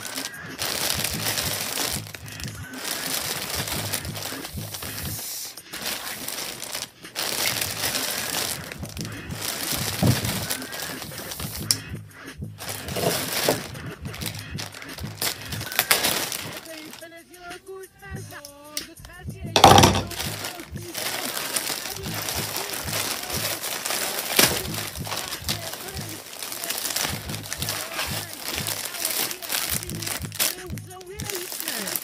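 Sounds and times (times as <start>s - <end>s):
plastic mailer crinkling: 0.0s - 11.8s, 12.6s - 17.4s, 19.6s - 32.0s.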